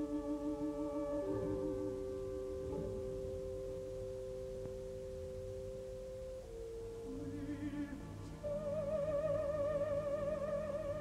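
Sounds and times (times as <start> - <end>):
quiet orchestral held notes: 0.0 - 11.0.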